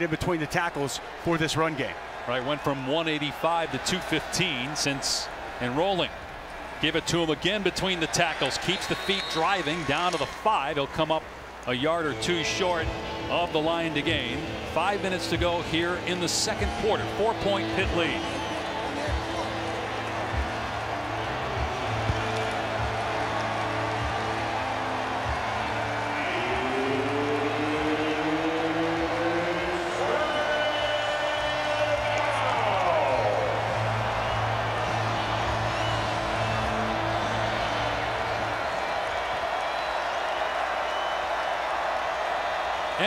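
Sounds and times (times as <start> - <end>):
stadium crowd cheering: 0.0 - 43.0
music over loudspeakers: 11.9 - 38.7.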